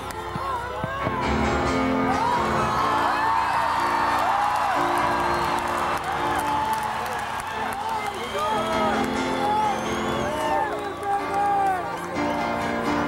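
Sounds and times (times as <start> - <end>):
held keyboard chords: 0.0 - 13.0
audience whooping and whistling: 2.0 - 12.6.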